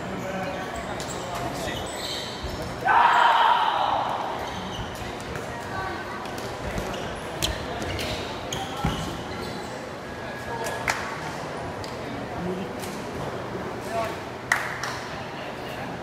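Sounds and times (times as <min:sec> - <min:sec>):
loud shout: 0:02.8 - 0:04.3.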